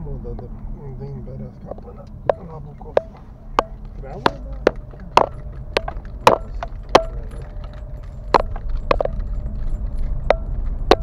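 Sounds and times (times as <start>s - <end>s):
car running low rumble: 0.0s - 11.0s
car knocks and clunks: 1.6s - 11.0s.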